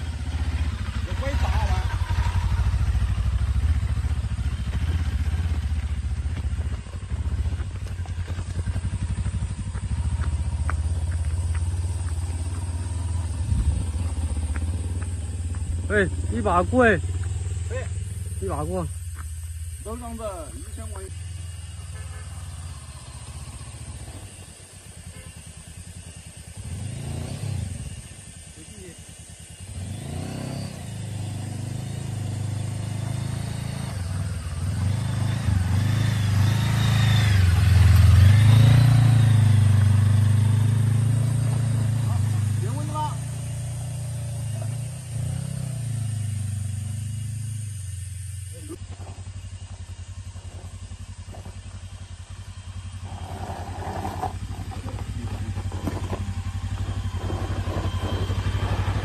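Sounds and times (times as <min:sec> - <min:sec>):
motorcycle engine climbing hill: 0:00.0 - 0:59.0
second engine running: 0:00.0 - 0:59.0.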